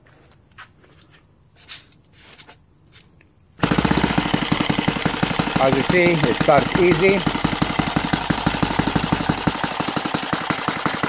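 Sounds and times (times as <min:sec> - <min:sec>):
model aircraft engine running: 0:03.6 - 0:11.0.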